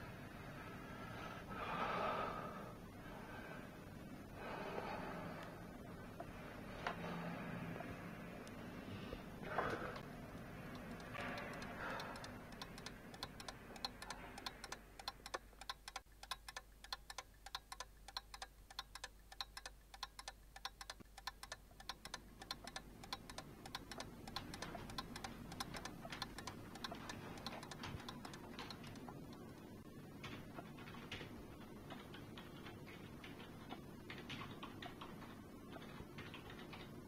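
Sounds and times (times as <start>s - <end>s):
wall clock ticking: 9.6s - 37.0s.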